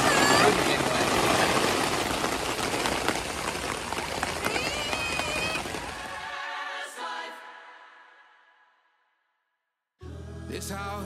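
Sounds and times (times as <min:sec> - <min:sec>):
steady rain falling: 0:00.0 - 0:06.5.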